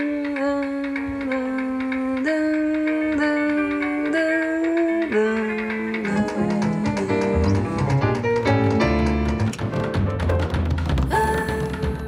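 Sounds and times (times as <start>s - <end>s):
band music with bass line: 1.1s - 12.0s.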